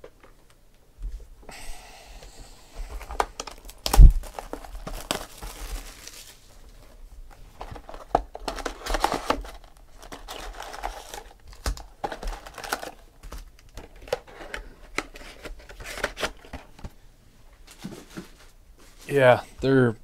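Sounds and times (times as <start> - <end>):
foil packs torn and crumpled: 3.0 - 6.5, 7.7 - 14.2.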